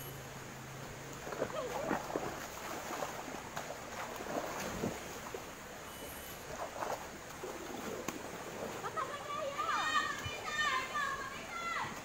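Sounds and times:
steady background hiss: 0:00.0 - 0:12.0
children shouting: 0:09.0 - 0:12.0.

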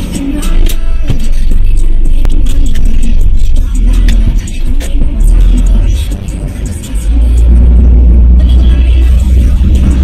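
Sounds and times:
music with heavy bass line: 0:00.0 - 0:10.0.

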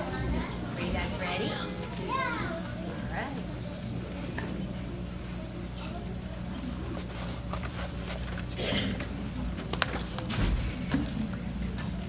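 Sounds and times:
young children calling: 0:00.0 - 0:03.2.

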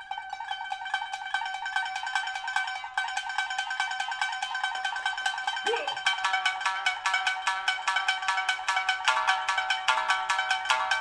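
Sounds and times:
shamisen rapid plucked notes: 0:00.0 - 0:11.0.

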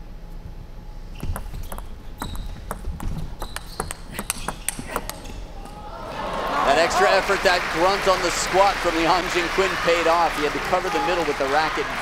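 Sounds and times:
table tennis ball clicking: 0:01.2 - 0:05.3
people shouting and cheering: 0:05.6 - 0:07.6, 0:08.5 - 0:12.0.

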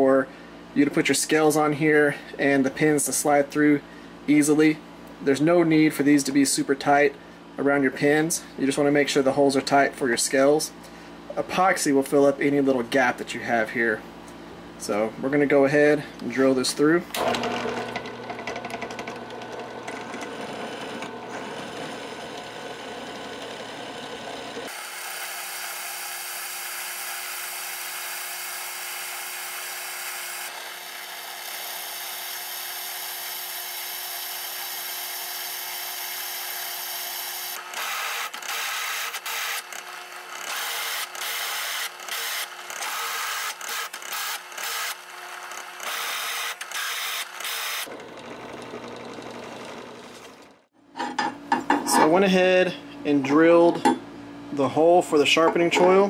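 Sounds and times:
drill press cutting steel: 0:17.1 - 0:52.0.

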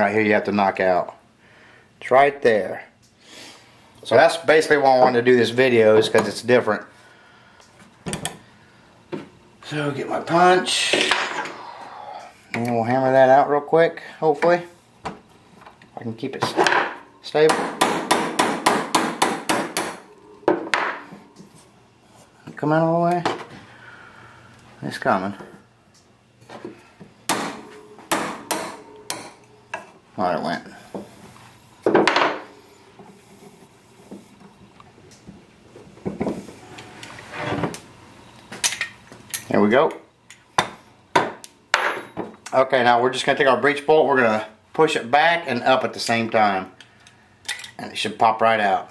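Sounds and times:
hammer tapping steel punch: 0:17.5 - 0:21.0, 0:27.3 - 0:29.9.

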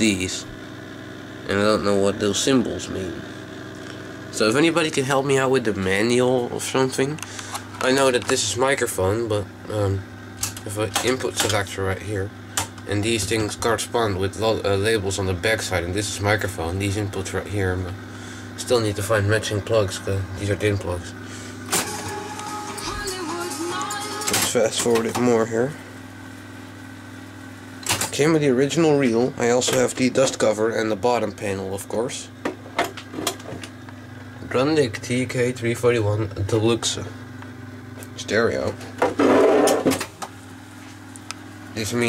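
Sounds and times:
steady low hum: 0:00.0 - 0:42.0
tape recorder running: 0:00.0 - 0:42.0.

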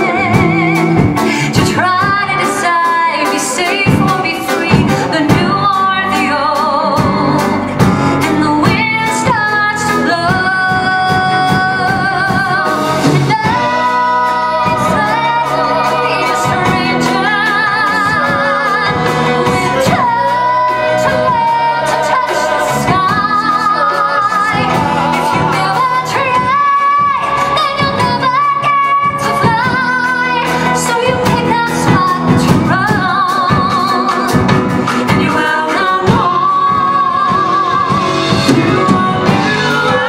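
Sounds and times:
instrumental accompaniment: 0:00.0 - 0:40.0
singers in harmony with vibrato: 0:00.0 - 0:40.0.

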